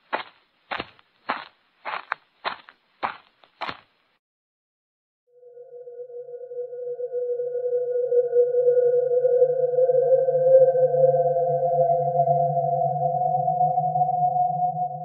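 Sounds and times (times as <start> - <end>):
eerie drone music: 5.3 - 15.0
low hum: 5.3 - 15.0.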